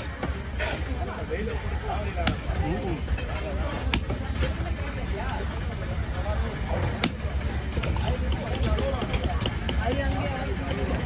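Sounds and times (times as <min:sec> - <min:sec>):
cleaver chopping fish on wood: 0:07.0 - 0:07.2, 0:07.8 - 0:10.9.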